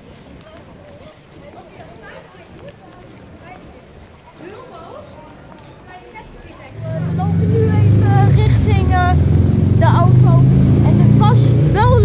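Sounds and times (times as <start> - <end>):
voices: 0.0 - 12.0
vehicle engine humming: 6.7 - 12.0.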